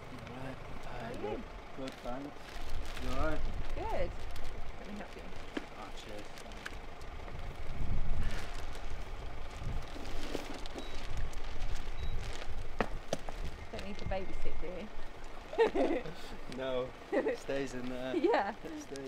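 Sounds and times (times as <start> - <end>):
low talk: 0.0 - 4.1, 15.4 - 19.0
bags being handled: 9.8 - 14.0.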